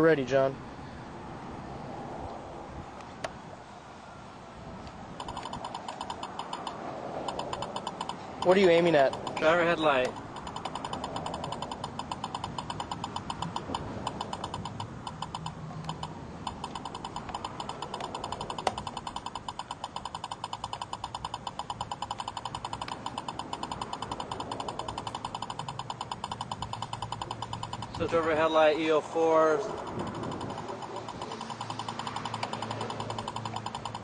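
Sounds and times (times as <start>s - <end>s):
sharp click: 5.2s - 28.5s, 29.6s - 34.0s
rapid electronic beeps: 5.2s - 34.0s.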